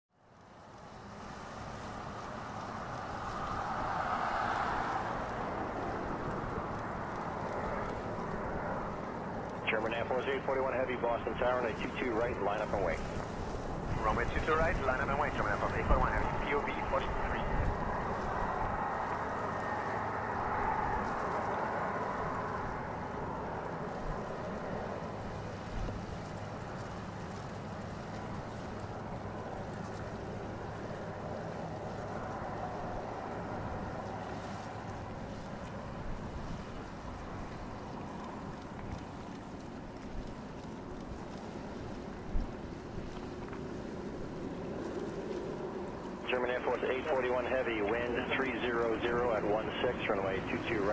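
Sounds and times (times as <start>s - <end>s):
jet engines at taxi power: 0.1s - 50.9s.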